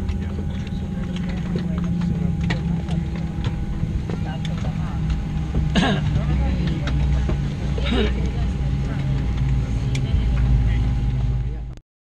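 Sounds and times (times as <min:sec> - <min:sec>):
airplane cabin low hum: 0:00.0 - 0:11.8
faint steady whine: 0:00.0 - 0:11.8
indistinct passenger voices: 0:00.0 - 0:11.8.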